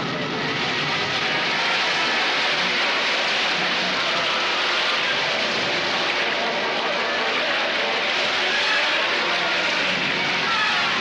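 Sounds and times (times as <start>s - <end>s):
wind: 0.0s - 11.0s.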